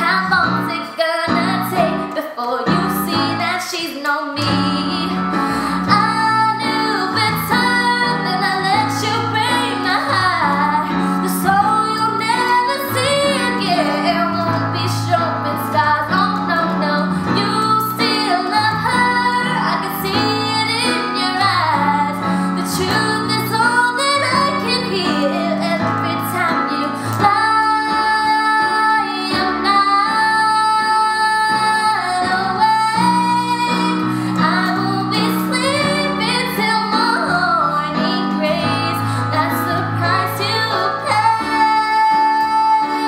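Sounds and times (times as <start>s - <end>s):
digital keyboard piano: 0.0s - 43.0s
woman singing a ballad: 0.0s - 43.0s.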